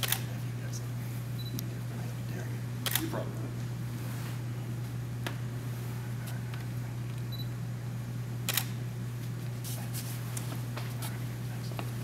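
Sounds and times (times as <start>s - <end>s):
camera shutter clicks: 0.0s - 0.3s, 2.8s - 3.1s, 8.5s - 8.8s
steady low hum: 0.0s - 12.0s.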